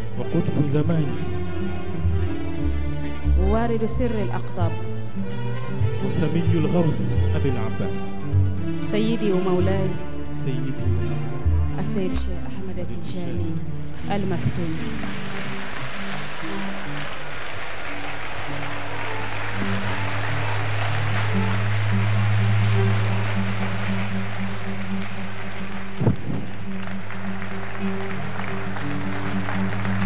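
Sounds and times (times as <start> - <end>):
audience crowd noise: 14.8 - 30.0
single thump: 26.0 - 26.5.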